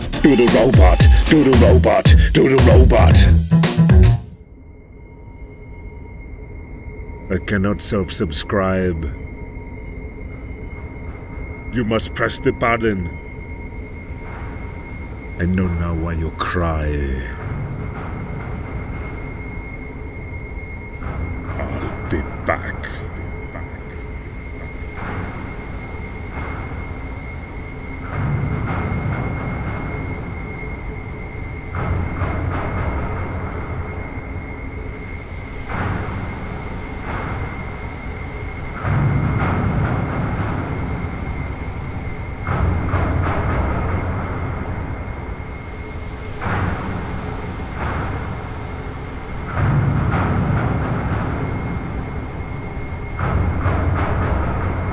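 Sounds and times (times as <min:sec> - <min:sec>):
steady high-pitched hum: 0:04.4 - 0:54.9.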